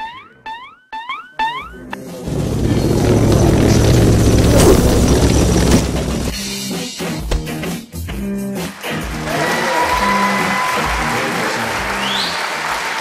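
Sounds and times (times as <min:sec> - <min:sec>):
loud dense music sting: 0:02.3 - 0:06.3.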